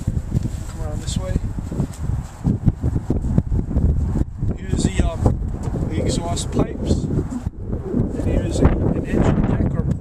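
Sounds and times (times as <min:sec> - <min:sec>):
wind buffeting microphone: 0:00.0 - 0:10.0
person speaking: 0:04.6 - 0:07.4.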